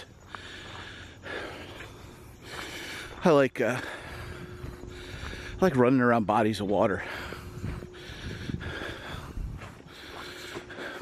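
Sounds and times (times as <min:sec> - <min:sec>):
person breathing hard while running: 0:00.0 - 0:05.8, 0:06.8 - 0:11.0.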